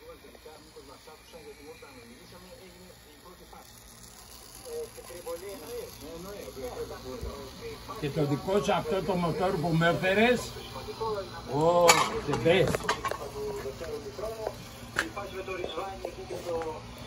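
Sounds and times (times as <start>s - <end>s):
indistinct conversation: 0.0s - 17.0s.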